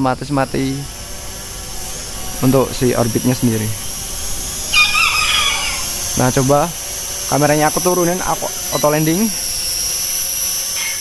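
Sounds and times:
drone propellers whining: 0:00.0 - 0:11.0.

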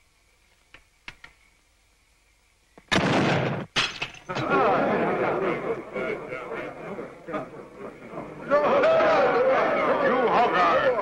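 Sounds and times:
musket shot: 0:02.9 - 0:04.1
sharp crash: 0:02.9 - 0:04.4
men shouting and whooping: 0:04.4 - 0:11.0.

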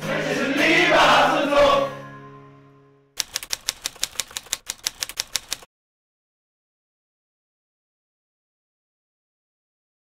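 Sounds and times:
keyboard key clicks: 0:03.2 - 0:05.7.

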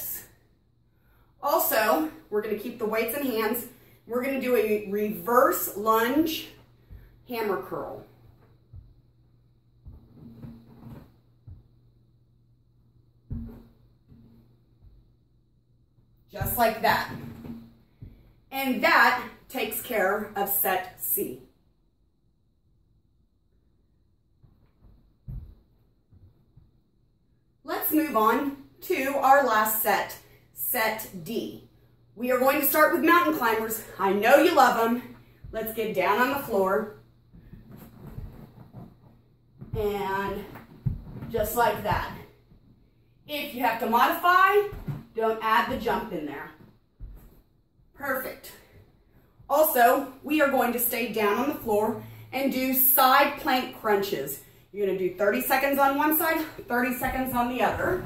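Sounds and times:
low steady hum: 0:00.0 - 0:58.0
soft movement noise: 0:01.6 - 0:20.8, 0:24.2 - 0:28.7, 0:31.7 - 0:58.0
feet thudding on exercise mat: 0:09.8 - 0:11.7, 0:13.2 - 0:15.0, 0:24.4 - 0:26.7, 0:34.0 - 0:42.8, 0:44.0 - 0:47.5.

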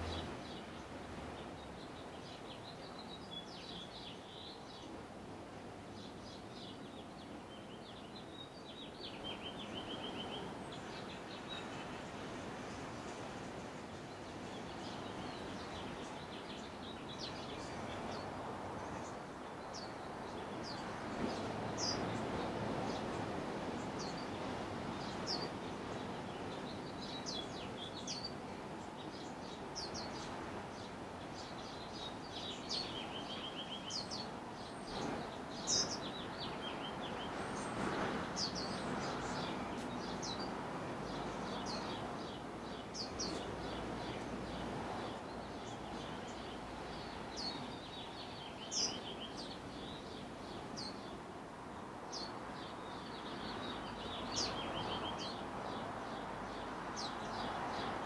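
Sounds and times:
bird chirps and trills: 0:29.1 - 0:40.5.

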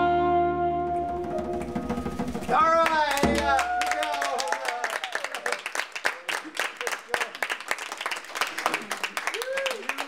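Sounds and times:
piano and saxophone chord: 0:00.0 - 0:02.4
hands clapping: 0:02.4 - 0:10.0
person whooping: 0:02.9 - 0:05.6, 0:09.2 - 0:10.0.

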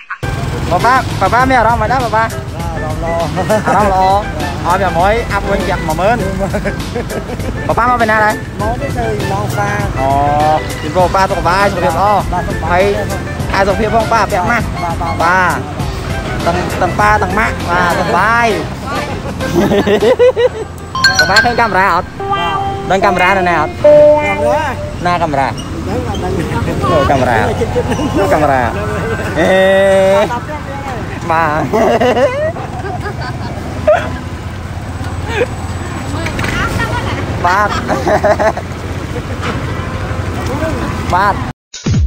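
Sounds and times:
motorbike engines running: 0:00.2 - 0:21.7, 0:24.7 - 0:41.5
people talking: 0:21.0 - 0:32.1
vehicle horn: 0:22.0 - 0:25.6.

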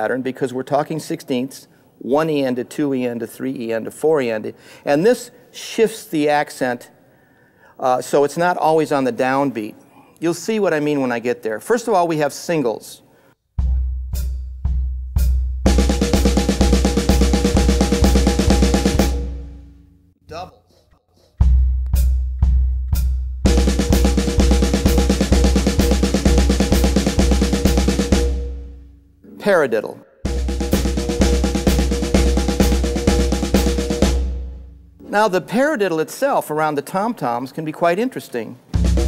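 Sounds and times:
bass drum pulse: 0:13.6 - 0:19.7, 0:21.4 - 0:28.9, 0:30.3 - 0:35.0, 0:38.8 - 0:39.0
drum single-stroke roll: 0:15.7 - 0:19.4, 0:23.5 - 0:28.4, 0:30.3 - 0:34.4, 0:38.8 - 0:39.0.

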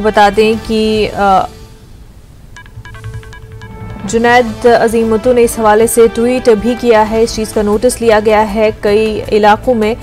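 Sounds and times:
quiet electronic background music: 0:00.0 - 0:10.0
short high beep-like notes: 0:02.6 - 0:04.4
news bulletin speech: 0:02.6 - 0:10.0.

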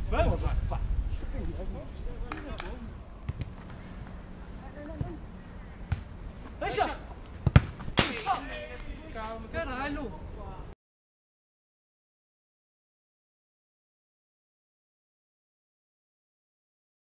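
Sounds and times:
football being kicked: 0:03.2 - 0:03.6, 0:04.9 - 0:05.2, 0:05.9 - 0:06.1, 0:06.8 - 0:08.2
players shouting: 0:06.5 - 0:07.2.

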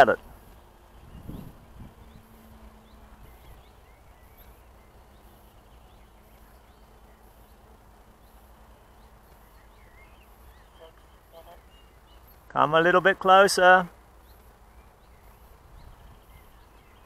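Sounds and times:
bird chirps: 0:00.0 - 0:17.0
faint steady hum: 0:00.0 - 0:17.0.

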